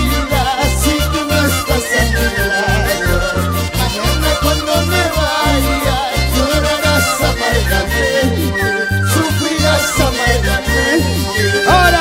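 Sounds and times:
electric bass: 0.0s - 12.0s
live band playing: 0.0s - 12.0s
sliding melody line: 0.0s - 12.0s.

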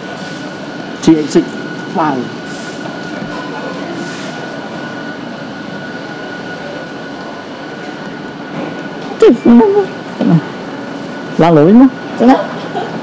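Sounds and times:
shopping mall hum and hiss: 0.0s - 13.0s.

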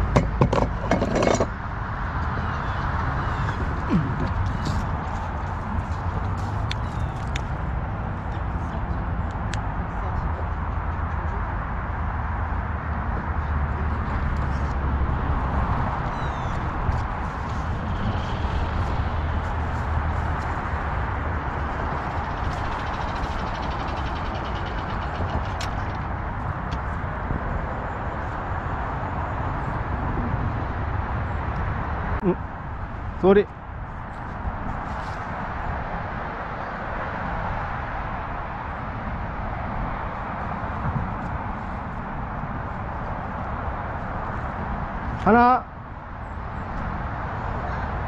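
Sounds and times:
wind buffeting microphone: 0.0s - 48.0s.

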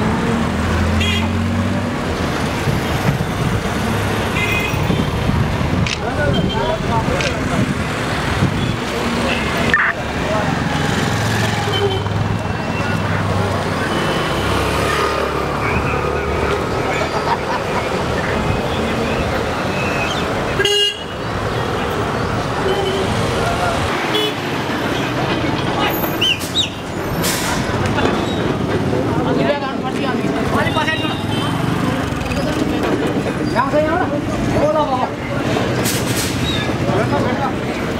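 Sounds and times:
traffic running: 0.0s - 37.9s
people talking: 5.8s - 7.9s, 8.6s - 11.0s, 12.4s - 19.7s, 36.8s - 37.9s.

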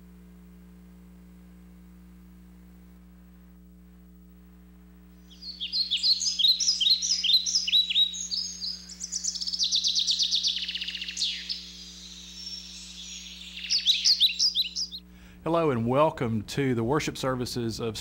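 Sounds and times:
low electrical hum: 0.0s - 18.0s
birds chirping and trilling: 5.2s - 15.1s.

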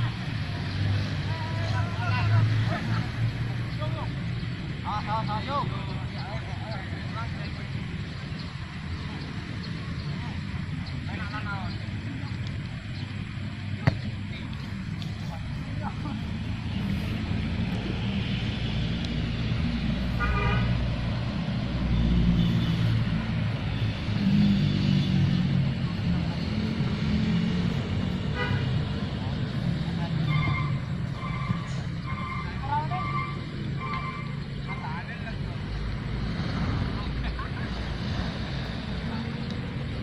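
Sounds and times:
horn tooting: 20.1s - 21.0s, 21.8s - 25.6s, 28.2s - 29.0s, 30.2s - 34.9s.

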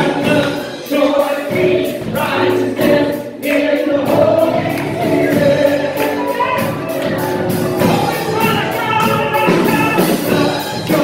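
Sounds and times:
electric keyboard: 0.0s - 11.0s
guitar accompaniment: 0.0s - 11.0s
steady beat: 0.0s - 11.0s
voices singing together: 0.0s - 11.0s
woman singing lead: 4.5s - 11.0s.

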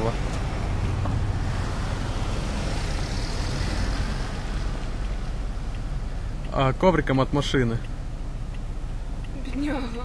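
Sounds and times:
traffic rumble and tyre noise: 0.0s - 10.0s.

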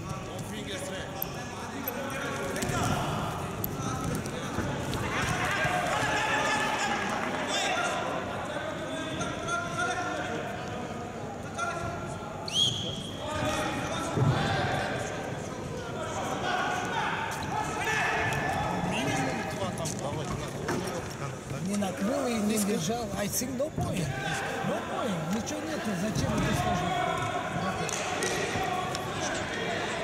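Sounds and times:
voices calling across a hall: 0.0s - 30.0s.

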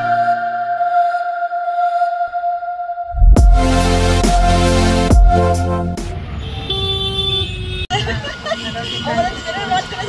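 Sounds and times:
road traffic noise: 3.6s - 10.0s
vehicle horn: 5.6s - 7.9s.

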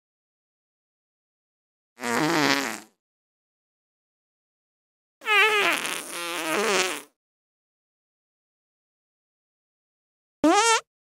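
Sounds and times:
long pitched fart: 2.0s - 3.0s, 5.2s - 7.2s, 10.4s - 10.9s.

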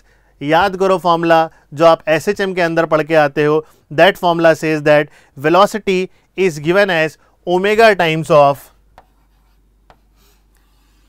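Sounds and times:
chalk writing on blackboard: 9.0s - 11.0s.

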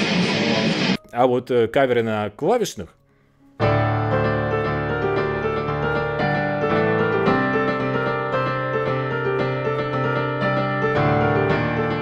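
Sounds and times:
digital piano chords: 3.4s - 12.0s.

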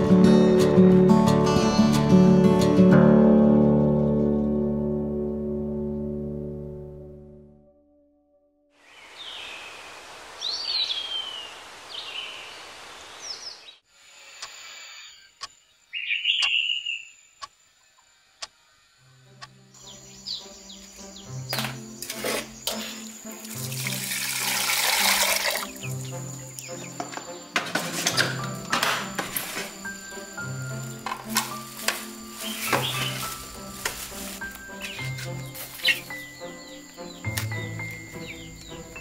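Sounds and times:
music with slow bass line: 0.0s - 8.4s
birds chirping: 8.8s - 13.8s, 14.4s - 23.5s, 25.1s - 39.0s.

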